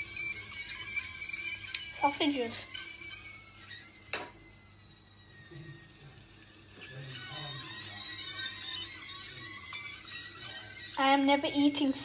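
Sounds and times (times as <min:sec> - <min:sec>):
sausages sizzling in a frying pan: 0:00.0 - 0:12.0.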